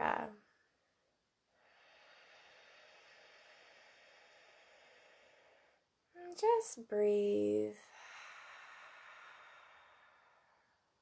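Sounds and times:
woman's faint breath: 0:07.9 - 0:11.0.

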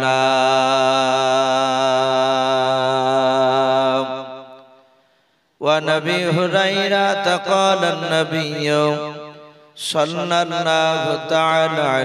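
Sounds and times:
man chanting through loudspeakers: 0:00.0 - 0:04.8, 0:05.6 - 0:12.0.

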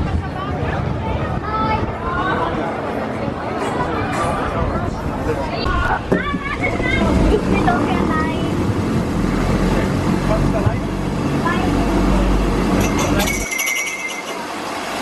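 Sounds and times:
metal roller slide rumbling: 0:05.9 - 0:15.0.

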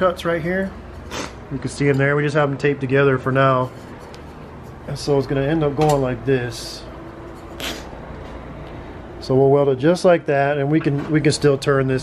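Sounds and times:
low steady hum: 0:00.0 - 0:12.0
hands scuffing metal pipe: 0:03.6 - 0:05.1.

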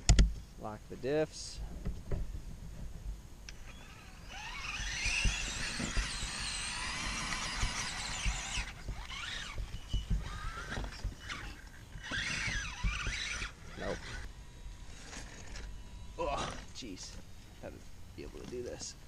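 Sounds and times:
toy truck motor whining: 0:03.5 - 0:17.1.

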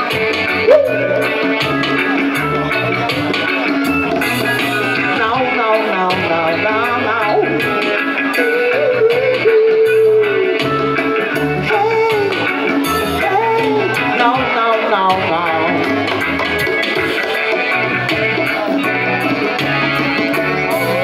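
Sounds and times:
bass guitar: 0:00.0 - 0:21.0
guitar: 0:00.0 - 0:21.0
woman singing: 0:04.7 - 0:15.9.

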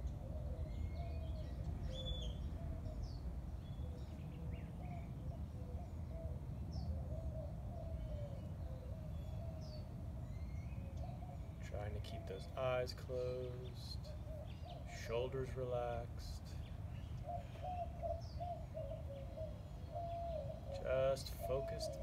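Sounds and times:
low outdoor rumble: 0:00.0 - 0:22.0.

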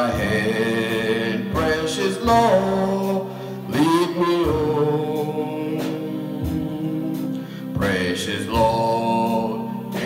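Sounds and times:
man singing a hymn: 0:00.0 - 0:10.0.

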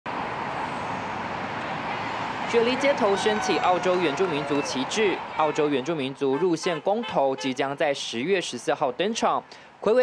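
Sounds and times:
city traffic noise: 0:00.0 - 0:10.0.

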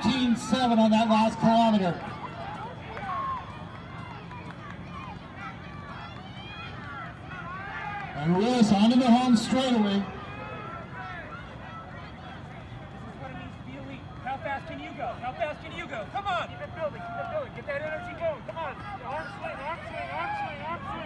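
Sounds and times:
distant spectators calling out: 0:00.0 - 0:21.0
low outdoor background: 0:00.0 - 0:21.0.

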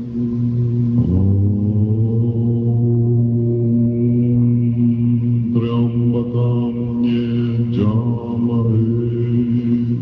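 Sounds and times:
monks chanting in unison: 0:00.9 - 0:10.0.

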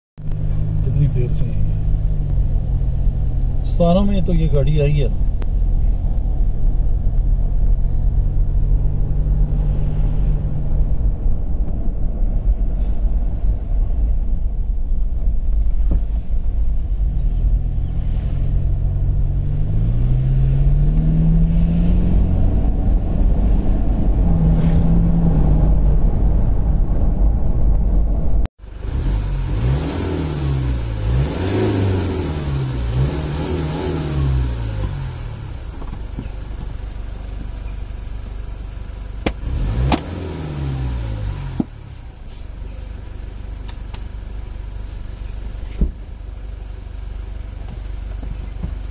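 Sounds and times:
diesel engine driving: 0:00.2 - 0:48.9.

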